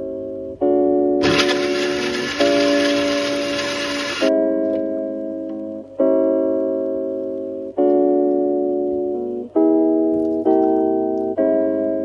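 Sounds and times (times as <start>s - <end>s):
background piano music: 0.0s - 12.0s
electric blender running: 1.2s - 4.3s.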